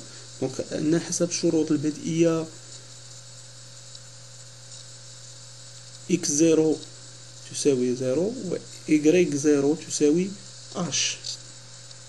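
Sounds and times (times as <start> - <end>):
electrical mains hum: 0.0 - 12.0
recording hiss: 0.0 - 12.0.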